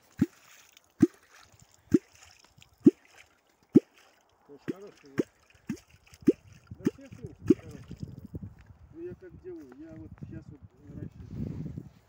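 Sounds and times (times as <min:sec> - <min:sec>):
hollow bloops in water: 0:00.0 - 0:08.2
faint knocks or splashes: 0:00.1 - 0:08.1.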